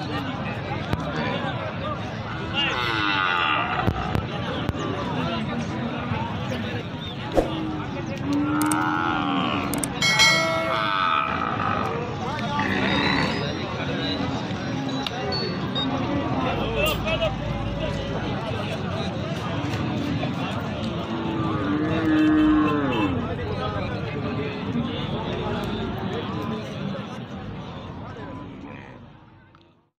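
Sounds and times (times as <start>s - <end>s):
market noise: 0.0s - 29.9s
short knock: 7.3s - 7.7s
cattle mooing: 8.3s - 13.5s.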